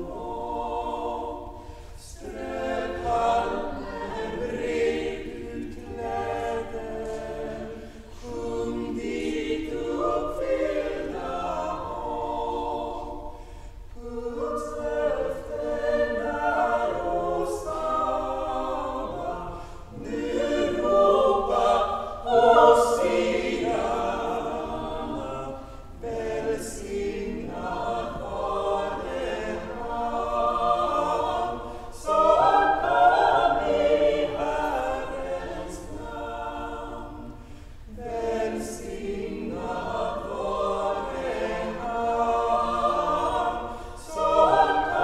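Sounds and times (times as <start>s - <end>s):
girls' choir singing: 0.0s - 45.0s.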